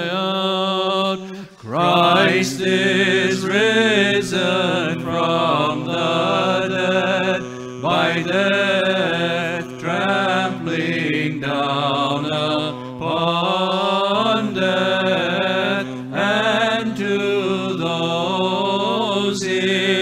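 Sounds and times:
man chanting: 0:00.0 - 0:20.0
held drone note: 0:01.3 - 0:16.4.

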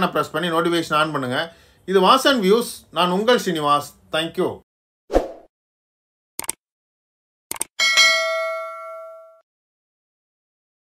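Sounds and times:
bell ding: 0:07.8 - 0:09.4.

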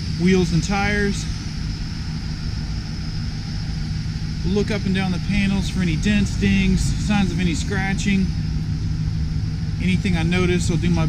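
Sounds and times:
low hum: 0:00.0 - 0:11.0
low vehicle rumble: 0:00.0 - 0:11.0.

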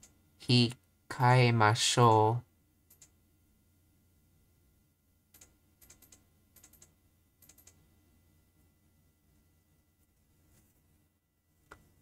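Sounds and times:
faint typing on keyboard: 0:02.8 - 0:03.2, 0:05.3 - 0:07.8.

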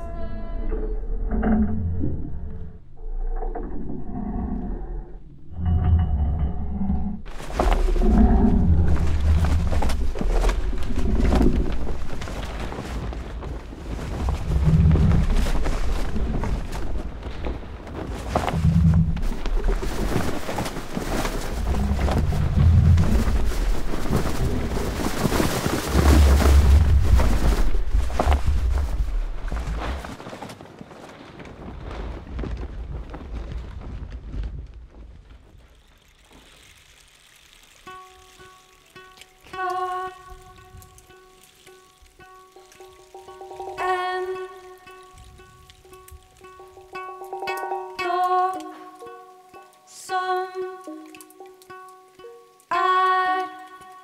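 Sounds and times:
deep rumble: 0:00.0 - 0:30.2
plucked notes ringing: 0:37.9 - 0:53.8.

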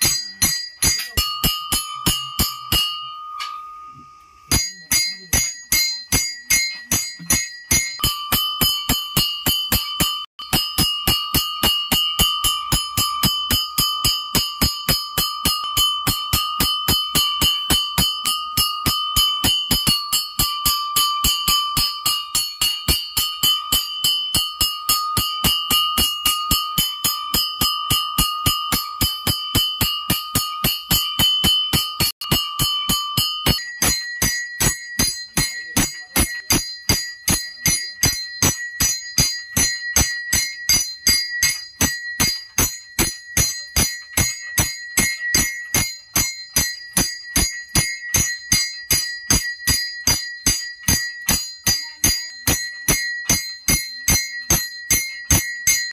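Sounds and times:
temple bell ringing: 0:00.0 - 0:55.9.

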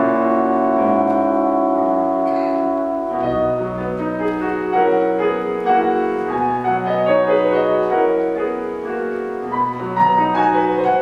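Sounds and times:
piano and orchestra playing: 0:00.0 - 0:11.0.

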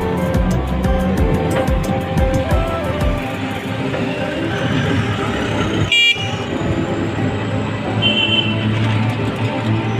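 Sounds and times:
street traffic: 0:00.0 - 0:09.9
high vehicle horn toot: 0:05.9 - 0:06.6, 0:08.0 - 0:08.7.

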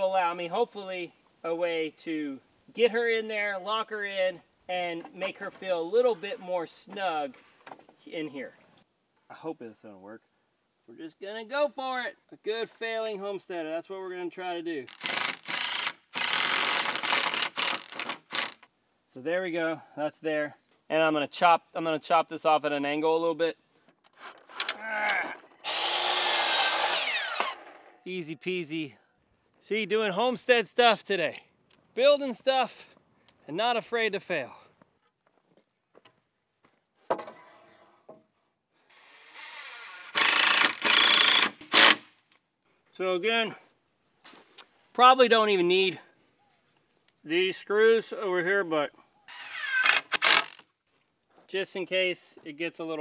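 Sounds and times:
power driver driving screw into wood: 0:14.9 - 0:18.7, 0:24.1 - 0:24.8, 0:25.6 - 0:27.8, 0:38.9 - 0:42.1, 0:49.3 - 0:50.7.

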